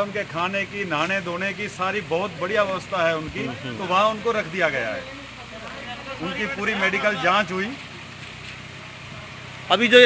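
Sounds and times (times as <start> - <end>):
tractor engine running: 0.0 - 10.0
person speaking: 3.2 - 4.5.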